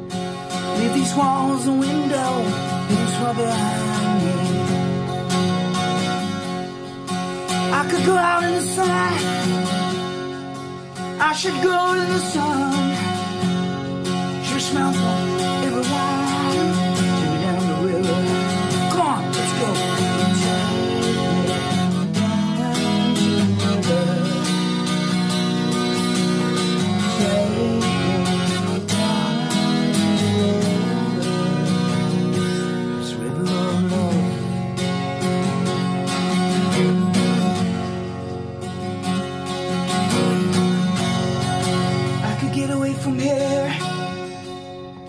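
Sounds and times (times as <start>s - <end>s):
acoustic guitar strumming: 0.0s - 45.0s.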